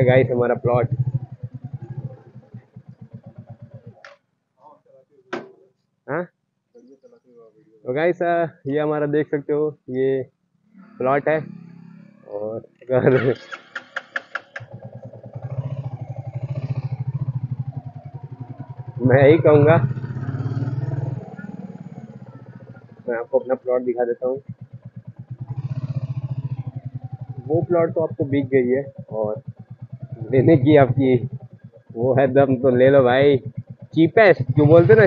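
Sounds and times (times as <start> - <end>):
motorcycle engine thumping: 0.0 - 4.3, 5.3 - 5.7, 13.5 - 23.1, 24.4 - 35.0.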